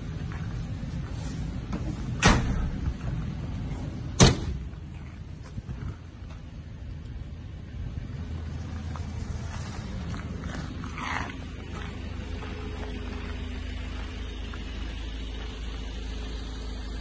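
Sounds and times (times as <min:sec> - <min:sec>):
low handling rumble: 0:00.0 - 0:17.0
loud tailgate slam: 0:02.2 - 0:02.8, 0:04.2 - 0:04.7.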